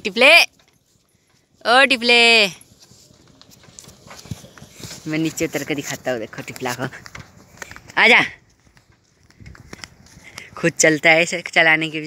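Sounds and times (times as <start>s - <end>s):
soft hoofsteps on dirt: 0.0s - 12.0s.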